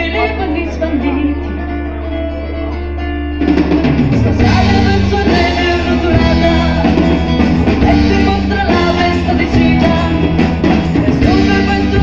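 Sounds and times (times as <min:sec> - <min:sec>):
live amplified band music: 0:00.0 - 0:12.0.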